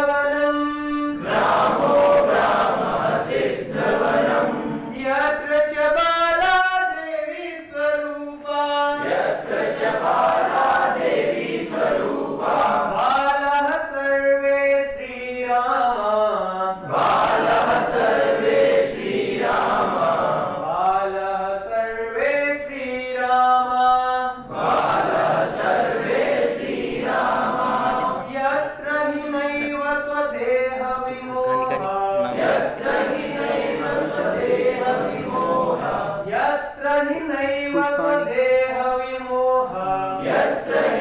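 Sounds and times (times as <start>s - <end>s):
man singing lead: 0.0s - 1.2s, 28.2s - 32.5s
group singing in unison: 0.0s - 6.8s, 7.5s - 41.0s.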